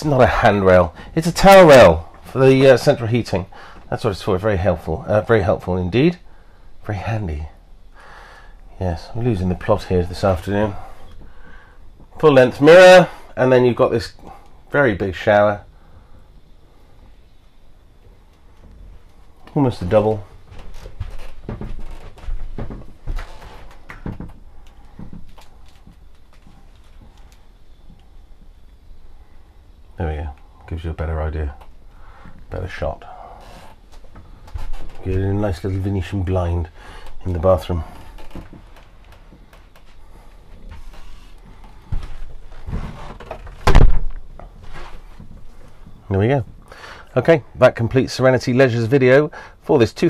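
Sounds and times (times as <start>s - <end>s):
knocks and clunks of handling: 20.5s - 27.2s, 40.6s - 46.6s
door shutting thump: 43.6s - 44.2s.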